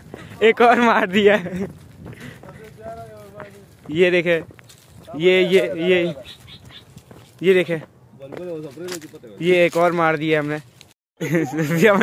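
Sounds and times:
man shouting: 5.1s - 6.2s.

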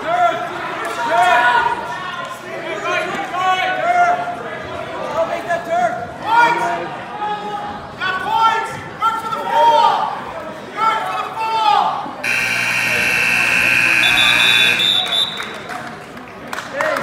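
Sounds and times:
scoreboard buzzer: 12.2s - 15.1s
voices calling out: 12.2s - 15.4s.

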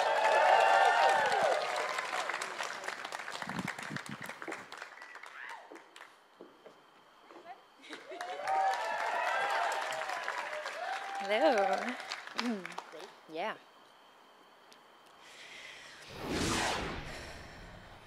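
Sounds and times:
audience shouting and whooping: 0.0s - 2.4s, 8.2s - 11.8s
audience applauding: 0.0s - 6.2s, 7.9s - 13.0s.

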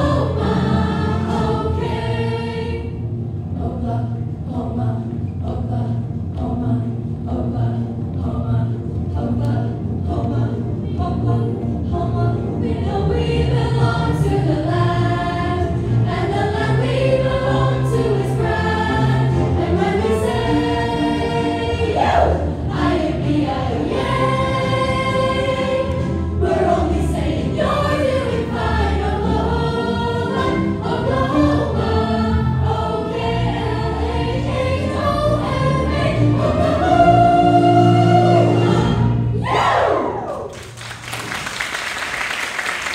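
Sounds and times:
chorus singing a show tune: 0.0s - 2.9s, 9.2s - 40.2s
instrumental accompaniment with bass: 0.0s - 39.7s.

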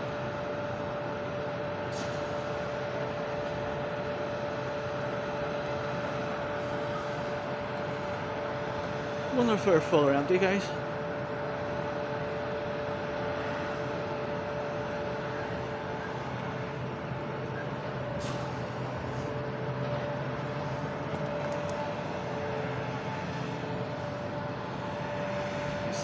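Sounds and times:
industrial machine hum with whine: 0.0s - 26.0s.

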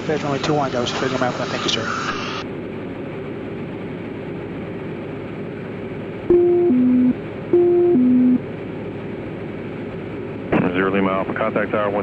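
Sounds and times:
airplane engine drone: 0.0s - 12.0s
two-note electronic alert tone: 6.3s - 8.4s.

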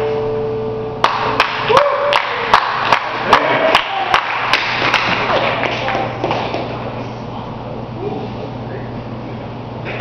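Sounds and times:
audience applauding: 1.0s - 6.7s
sharp close claps: 1.0s - 6.7s.

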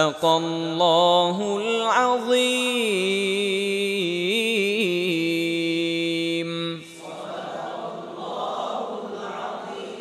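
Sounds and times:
man reciting melodically: 0.0s - 7.1s.

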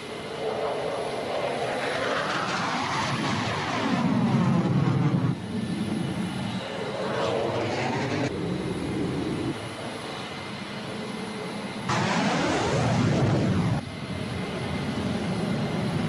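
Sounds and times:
fighter jet engine rush: 0.0s - 16.0s.

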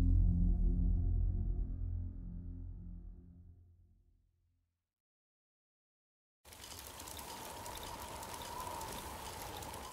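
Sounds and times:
low rumble: 0.0s - 4.0s
crackling fizz: 6.5s - 9.9s.

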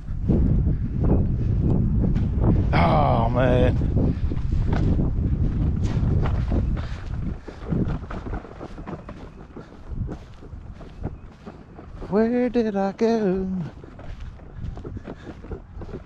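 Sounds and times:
footsteps on grass: 0.0s - 16.0s
wind rumbling on microphone: 0.0s - 16.0s.

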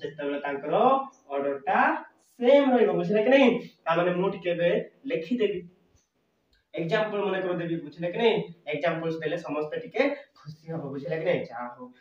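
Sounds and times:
man speaking: 0.0s - 5.7s, 6.7s - 12.0s.

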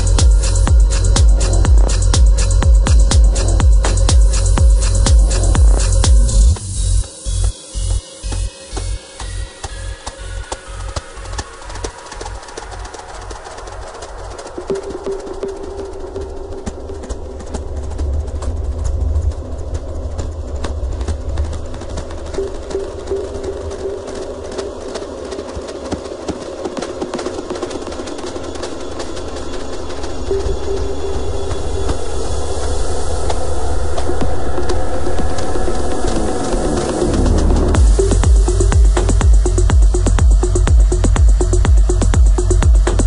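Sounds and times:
techno kick drum: 0.0s - 12.9s, 34.0s - 43.0s
deep low drone: 0.0s - 43.0s
crackling clicks: 9.2s - 32.0s.

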